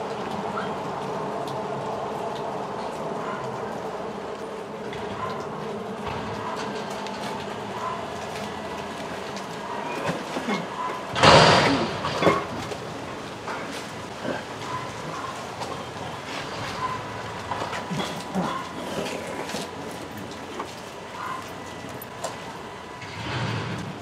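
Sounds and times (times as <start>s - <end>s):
garbage truck engine and hydraulics: 2.7s - 24.0s
dumpster load crashing: 6.0s - 15.6s, 22.5s - 24.0s.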